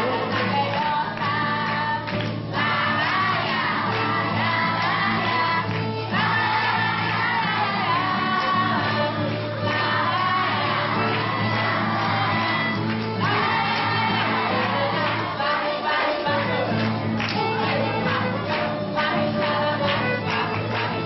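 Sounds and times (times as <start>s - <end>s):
acoustic guitars: 0.0s - 21.0s
children singing: 0.0s - 21.0s
violin playing: 3.2s - 21.0s.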